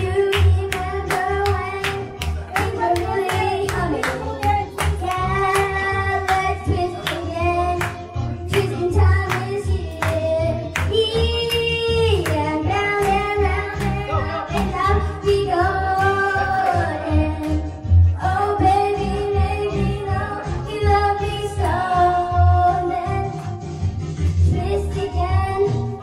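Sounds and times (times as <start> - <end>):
child singing into microphone: 0.0 - 17.6, 18.2 - 23.4, 24.4 - 25.9
backing track with bass beat: 0.0 - 26.0.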